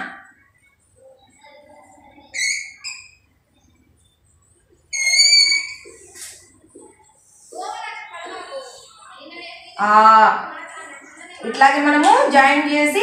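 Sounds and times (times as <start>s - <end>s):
chalk squeaking on a blackboard: 2.2s - 3.3s, 4.9s - 7.7s.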